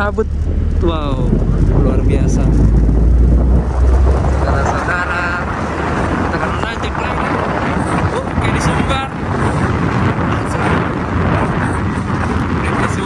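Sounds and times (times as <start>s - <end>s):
vehicle engine and road noise: 0.0s - 13.0s
wind rushing over microphone: 0.0s - 13.0s.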